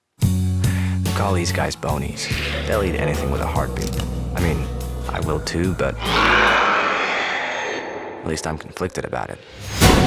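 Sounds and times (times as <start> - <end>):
rasping creature hiss: 6.0 - 7.9.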